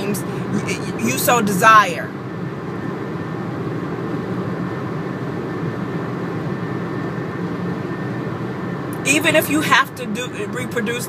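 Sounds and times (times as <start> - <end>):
car cabin rumble and hiss: 0.0 - 11.0.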